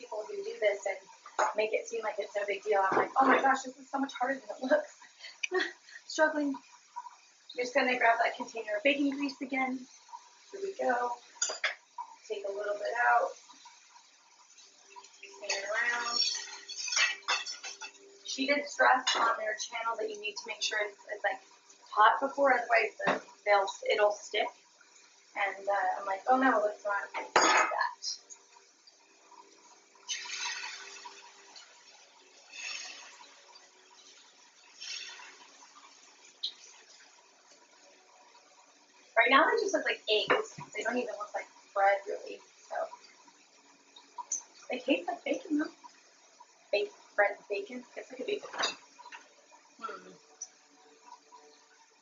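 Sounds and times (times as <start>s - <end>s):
batter sizzling in hot pan: 0.0s - 52.0s
faint steady hiss: 0.0s - 52.0s.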